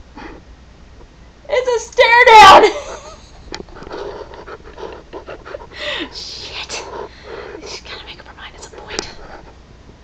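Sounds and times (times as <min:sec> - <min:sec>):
breathy laughter: 0:02.7 - 0:06.2
woman whispering: 0:05.9 - 0:09.2.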